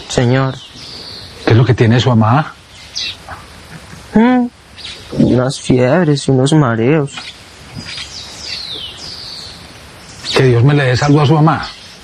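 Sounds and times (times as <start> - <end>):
faint outdoor background: 0.0 - 12.0
birds whistling: 0.4 - 1.6, 2.6 - 3.4, 4.7 - 5.4, 7.2 - 12.0.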